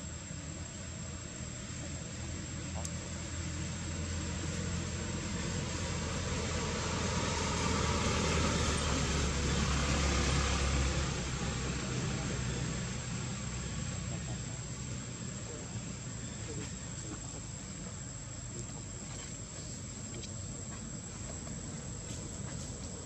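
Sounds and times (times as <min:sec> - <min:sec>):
vehicle passing by: 0:02.2 - 0:16.7.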